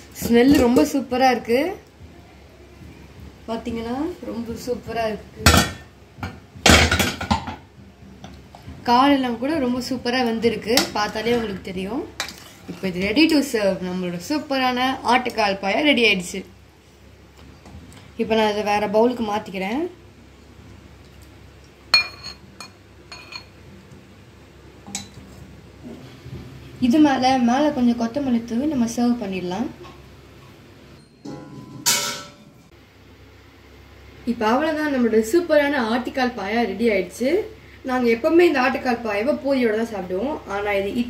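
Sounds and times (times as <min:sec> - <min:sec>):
metal utensil clattering on pot: 0:31.2 - 0:32.6.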